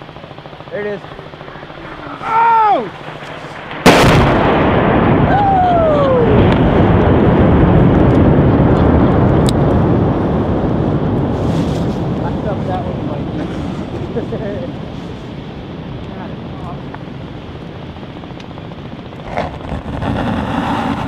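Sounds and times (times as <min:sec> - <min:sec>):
distant explosion with rumble: 0:00.0 - 0:21.0
man exclaiming: 0:02.2 - 0:02.9.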